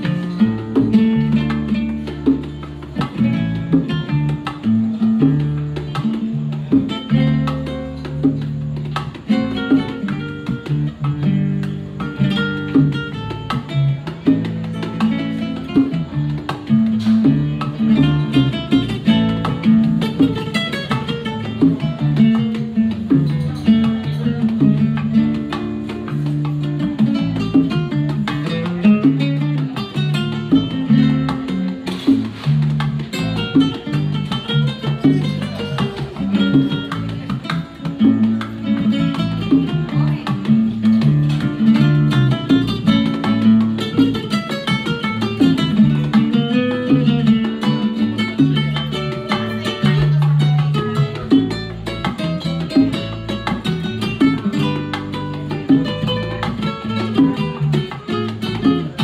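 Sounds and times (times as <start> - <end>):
bongo hand drums: 0.0 - 59.0
plucked acoustic guitar melody: 0.0 - 59.0.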